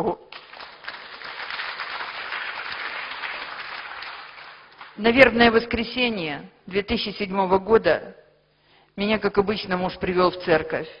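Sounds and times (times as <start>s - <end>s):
audience applauding: 0.3s - 5.0s.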